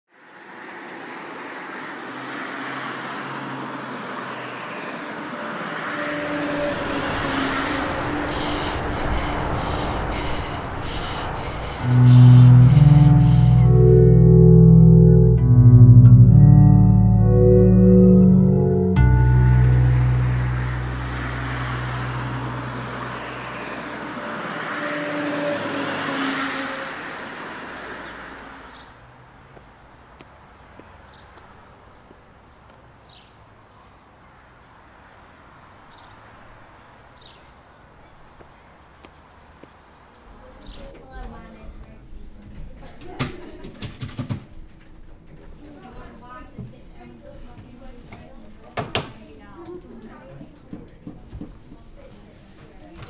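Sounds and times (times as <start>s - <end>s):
motorway traffic noise: 0.1s - 53.0s
vehicle passing: 0.2s - 33.6s
low music drone: 11.2s - 25.9s.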